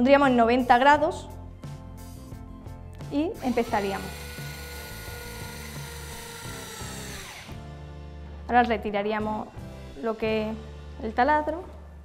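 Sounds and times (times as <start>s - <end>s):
battery drill whining: 3.4s - 7.8s.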